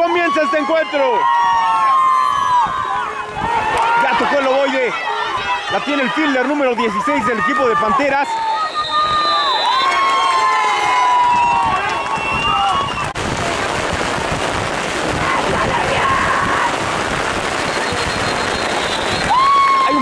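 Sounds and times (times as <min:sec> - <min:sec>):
spectators yelling: 0:00.0 - 0:13.2, 0:15.0 - 0:17.0, 0:17.7 - 0:20.0
heavy rain on microphone: 0:11.2 - 0:20.0.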